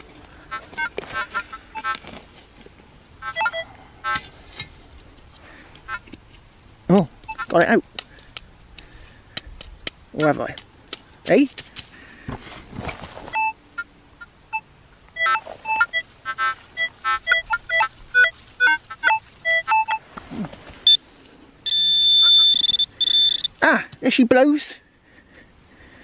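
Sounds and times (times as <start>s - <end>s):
metal detector beeps: 0.8s - 2.0s, 3.2s - 4.2s, 7.2s - 7.5s, 13.3s - 13.9s, 14.5s - 16.1s, 16.8s - 20.0s, 21.6s - 23.6s
pinpointer steady high tone: 3.3s - 3.7s, 13.4s - 20.0s, 21.6s - 23.6s.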